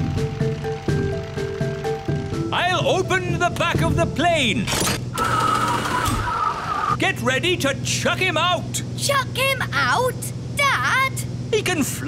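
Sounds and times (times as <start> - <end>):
low plane engine drone: 0.0 - 12.0
mechanical whirr: 4.6 - 7.0.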